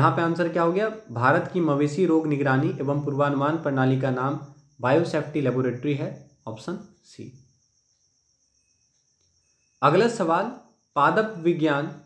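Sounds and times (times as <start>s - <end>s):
man speaking: 0.0s - 7.4s, 9.8s - 12.0s.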